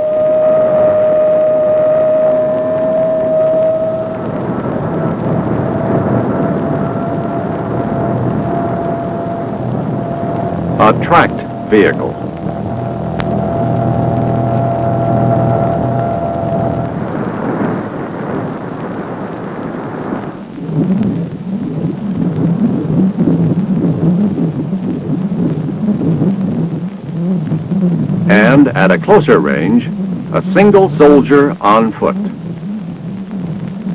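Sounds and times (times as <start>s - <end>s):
low wavering warble: 0.0s - 19.0s, 20.6s - 33.9s
radar audio droning tone: 0.0s - 33.9s
radar hiss: 0.0s - 33.9s.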